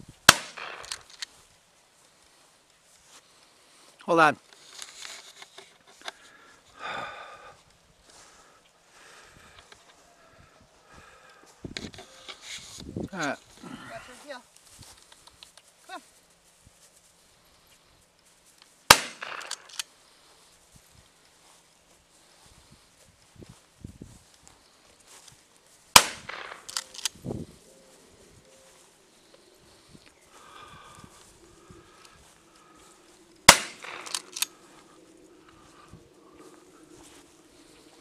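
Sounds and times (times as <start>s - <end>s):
gunshot: 0.3s - 0.9s, 18.9s - 19.6s, 26.0s - 26.7s, 33.5s - 34.2s
small cracks: 0.3s - 1.4s, 18.6s - 19.9s, 25.9s - 27.2s, 33.4s - 34.9s.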